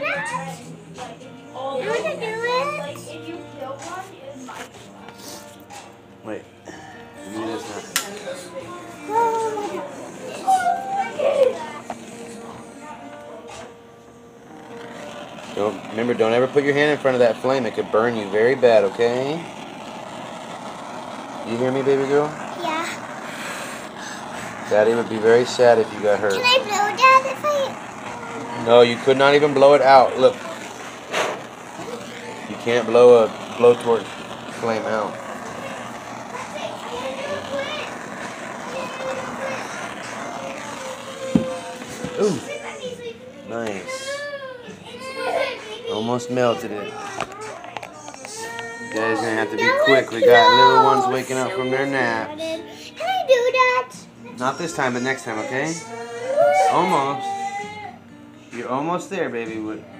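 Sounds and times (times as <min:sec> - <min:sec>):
faint children's voices: 0:00.0 - 0:05.4, 0:07.4 - 0:58.0
blowtorch flame hissing: 0:00.0 - 0:57.9.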